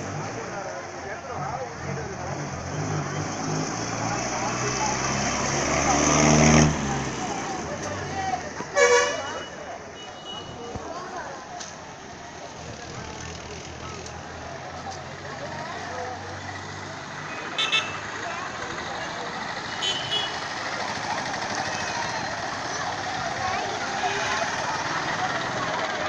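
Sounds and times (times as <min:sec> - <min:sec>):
traffic: 0:00.0 - 0:26.0.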